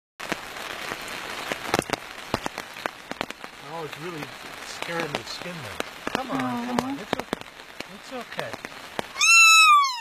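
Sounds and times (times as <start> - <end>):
large raindrops tapping: 0.2 - 10.0
rain falling steadily: 0.2 - 10.0.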